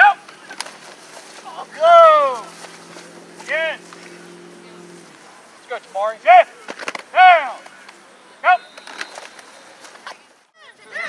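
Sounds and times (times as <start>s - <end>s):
person shouting: 0.0s - 0.2s, 1.5s - 2.5s, 7.2s - 7.6s
several voices talking: 1.2s - 11.0s.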